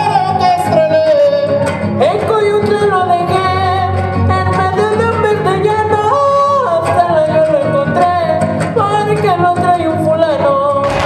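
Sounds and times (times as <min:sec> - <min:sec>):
person singing with falsetto leaps: 0:00.0 - 0:01.8
strummed guitars: 0:00.0 - 0:11.0.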